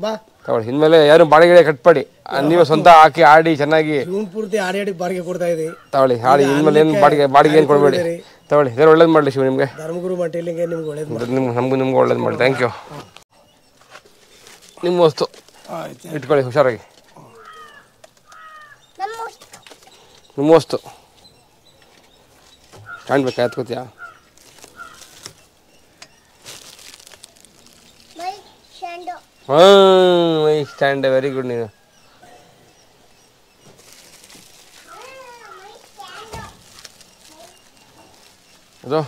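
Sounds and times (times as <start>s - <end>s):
person speaking: 6.2s - 8.4s
high child's voice: 19.0s - 19.5s, 28.1s - 29.3s, 34.8s - 36.6s, 37.3s - 37.6s.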